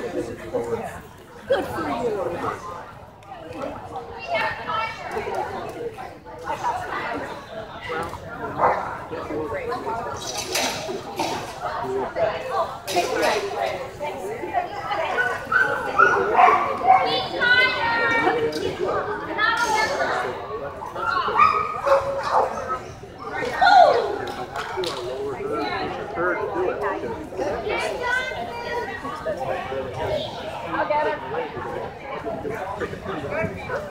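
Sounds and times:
people's voices: 0:00.0 - 0:33.9.

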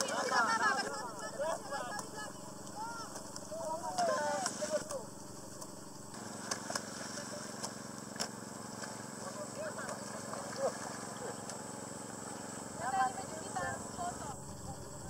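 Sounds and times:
people calling to one another: 0:00.0 - 0:05.1
steady low hum: 0:00.0 - 0:15.0.

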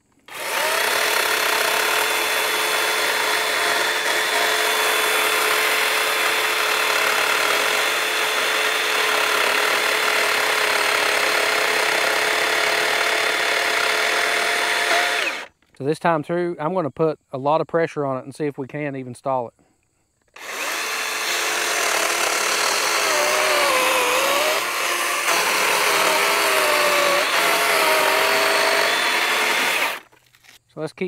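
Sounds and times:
chainsaw cutting through log: 0:00.0 - 0:15.5, 0:20.4 - 0:30.6.

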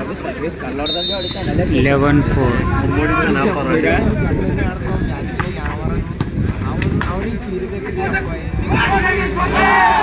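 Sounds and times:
commentators talking: 0:00.0 - 0:10.0
crowd voices: 0:00.0 - 0:10.0.

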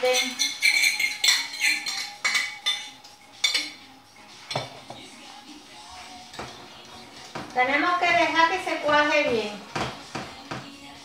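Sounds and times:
fork clinking against bowl: 0:00.0 - 0:05.0.

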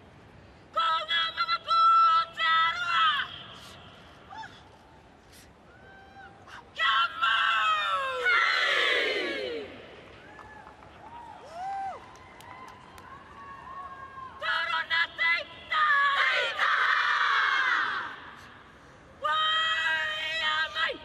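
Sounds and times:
women chanting and shouting: 0:00.8 - 0:03.6, 0:14.4 - 0:18.4, 0:19.2 - 0:21.0.

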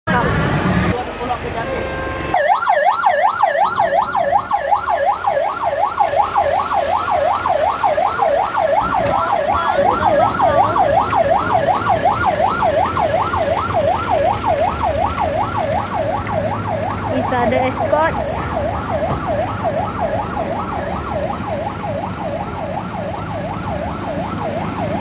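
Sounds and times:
electronic siren yelping: 0:02.3 - 0:25.0.

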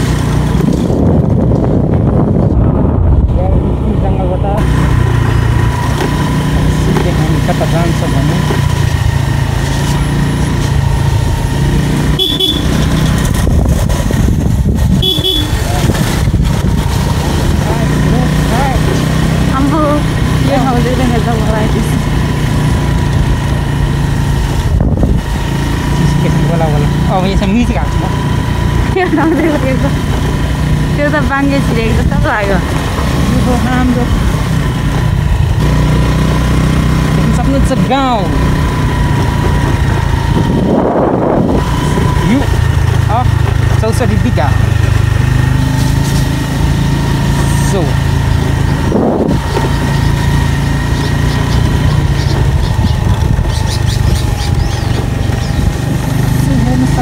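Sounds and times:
small motorcycle engine running: 0:00.0 - 0:57.0
horn toots: 0:12.1 - 0:13.4, 0:14.9 - 0:16.2.

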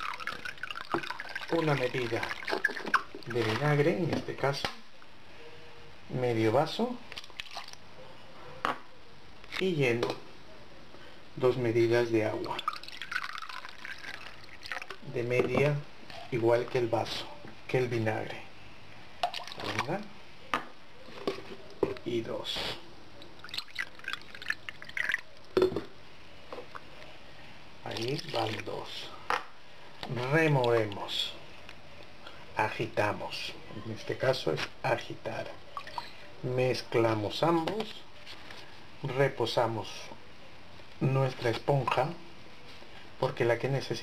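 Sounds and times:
liquid pouring into plastic bowl: 0:00.0 - 0:03.8, 0:07.1 - 0:07.8, 0:12.2 - 0:15.8, 0:19.2 - 0:20.0, 0:23.3 - 0:25.9, 0:27.8 - 0:29.0.

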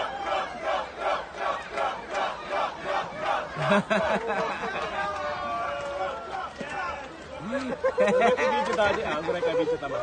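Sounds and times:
group of voices chanting: 0:00.0 - 0:03.8.

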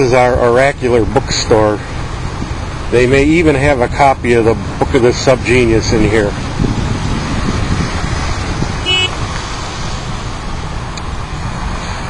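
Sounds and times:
traffic low rumble: 0:00.0 - 0:12.0
short high-pitched horn toot: 0:08.8 - 0:09.2.

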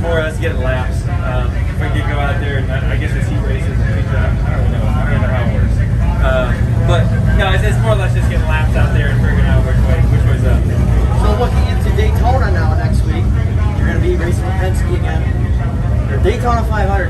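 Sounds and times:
low rumble: 0:00.0 - 0:17.0
people talking: 0:00.0 - 0:17.0.

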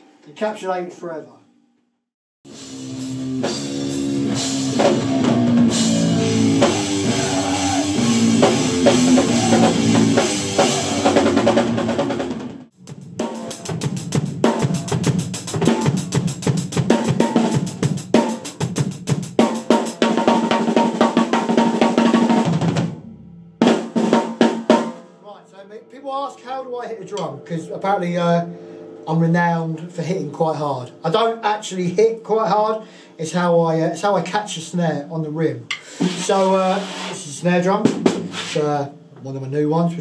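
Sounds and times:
drum kit played hard: 0:02.5 - 0:31.7, 0:35.7 - 0:39.0
band playing: 0:02.5 - 0:32.0.

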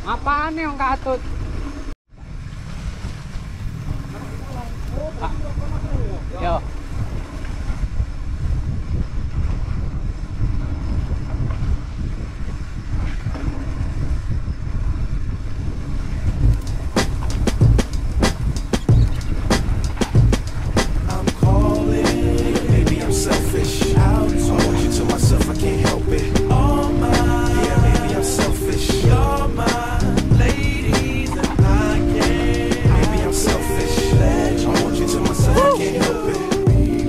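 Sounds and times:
tyres on dirt track: 0:00.0 - 0:07.9
wind rumbling on microphone: 0:00.0 - 0:37.0
bike rattling over bumps: 0:01.1 - 0:08.0, 0:16.2 - 0:21.6
music: 0:16.5 - 0:37.0.

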